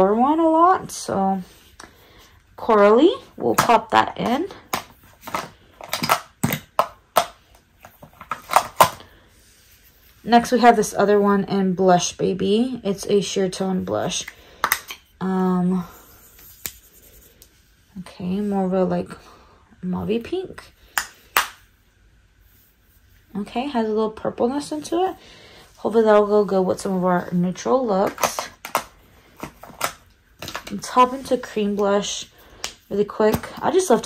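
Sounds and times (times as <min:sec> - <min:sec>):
plastic makeup cases clacking: 0:03.5 - 0:09.0, 0:28.0 - 0:31.0.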